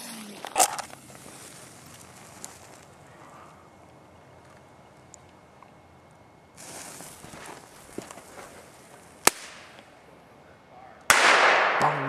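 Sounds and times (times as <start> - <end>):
firework crack: 6.6 - 9.9, 11.1 - 12.0
firework blast with crackling: 11.1 - 12.0.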